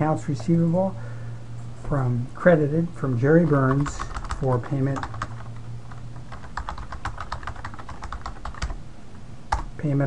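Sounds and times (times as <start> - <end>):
faint low hum: 0.0 - 10.0.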